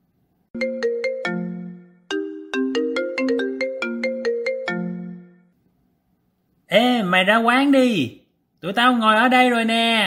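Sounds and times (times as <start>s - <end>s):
phone ringtone melody: 0.6s - 5.6s.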